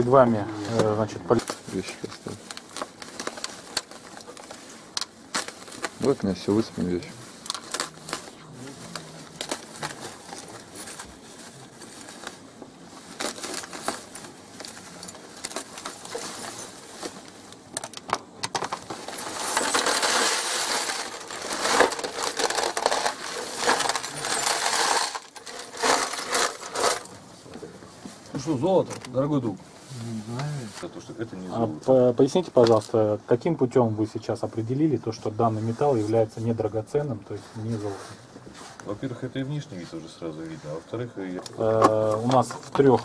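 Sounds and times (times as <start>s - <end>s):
plastic bag rustling: 0.0s - 27.2s, 34.6s - 43.0s
metal pieces rattling and clinking: 18.6s - 27.1s.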